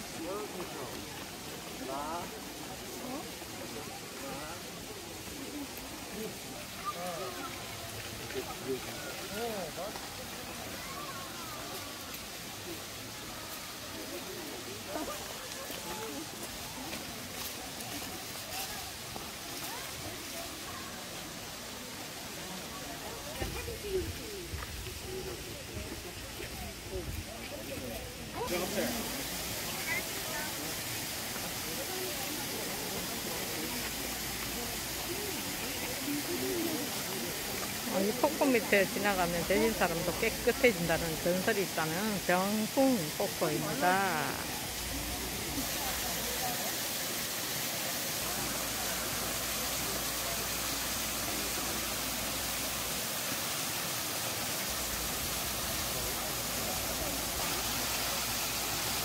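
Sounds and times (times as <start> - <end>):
chatter of many voices: 0.0 - 59.0
waterfall hissing: 0.0 - 59.0.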